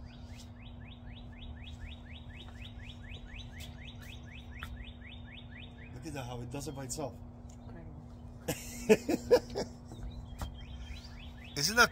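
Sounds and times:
bird chirping: 0:00.0 - 0:08.8, 0:09.5 - 0:11.9
steady low hum: 0:00.0 - 0:11.9.

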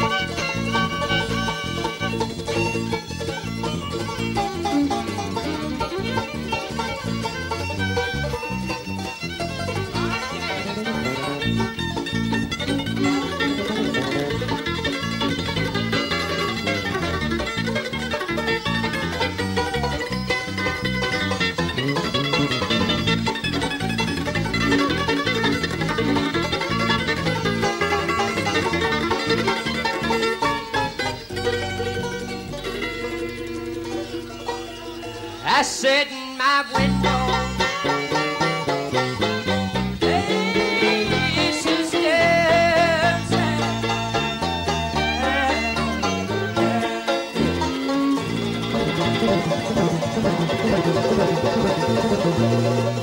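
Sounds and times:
electric bass: 0:00.0 - 0:35.7, 0:36.7 - 0:53.0
acoustic guitar: 0:00.0 - 0:53.0
banjo picking: 0:00.0 - 0:53.0
mandolin picking: 0:00.0 - 0:53.0.

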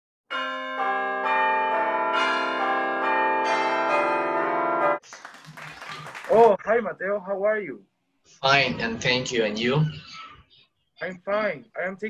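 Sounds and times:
bell-like chiming music: 0:00.3 - 0:05.0.

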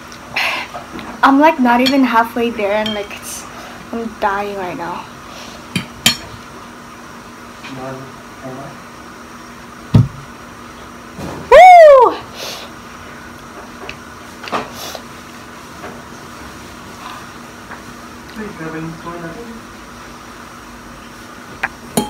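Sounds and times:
woman crying woo: 0:11.5 - 0:12.3.

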